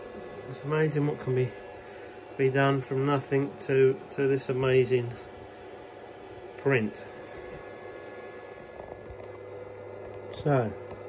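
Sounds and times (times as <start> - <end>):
faint steady tones: 0.0 - 11.0
fan hum and hiss: 0.0 - 11.0.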